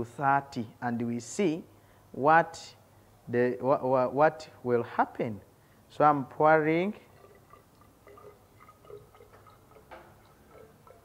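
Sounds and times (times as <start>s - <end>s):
faint water drips and plinks: 6.9s - 11.0s
water pouring into cylinder: 6.9s - 11.0s.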